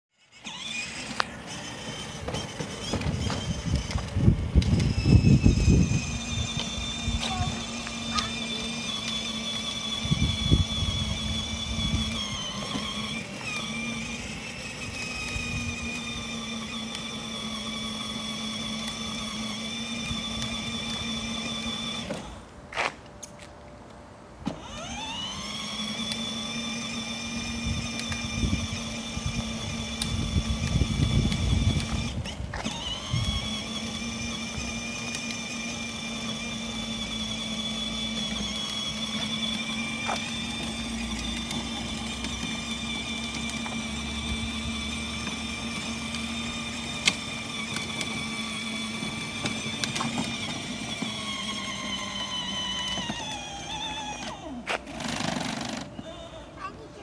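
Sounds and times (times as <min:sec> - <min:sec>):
electric toy car motor whining: 0:00.1 - 0:22.5, 0:24.5 - 0:57.0.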